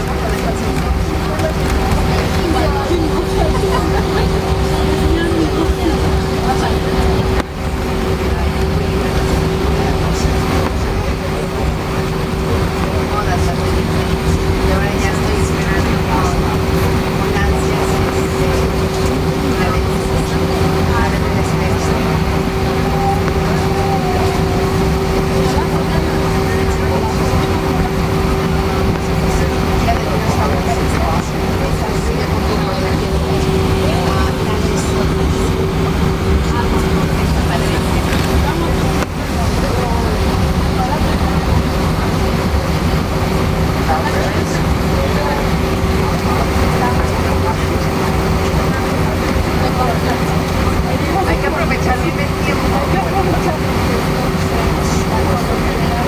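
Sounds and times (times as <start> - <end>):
jet engine hum: 0.0 - 56.0
low rumble: 0.0 - 56.0.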